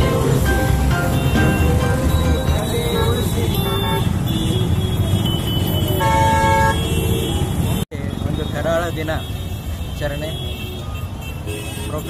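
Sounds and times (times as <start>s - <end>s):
man's voice: 0.0s - 4.1s
vehicle horn: 0.0s - 7.8s, 9.3s - 12.0s
street traffic rumbling: 0.0s - 12.0s.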